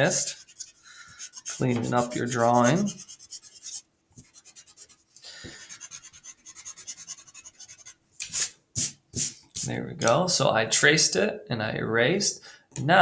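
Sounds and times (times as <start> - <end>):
pencil eraser rubbing on paper: 0.2 - 9.7.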